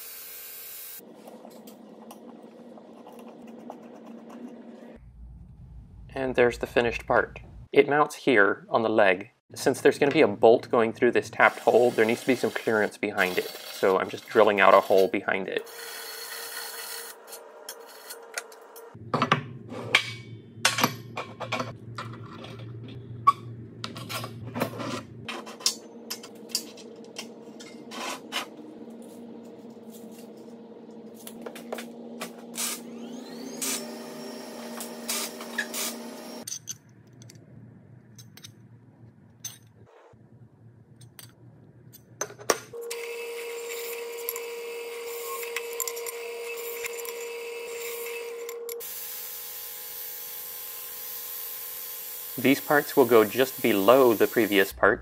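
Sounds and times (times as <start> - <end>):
drill press motor running: 31.9 - 36.4
tools and steel parts clattering: 36.4 - 37.3, 38.1 - 38.6, 39.4 - 39.8
cordless drill boring steel: 42.9 - 54.6.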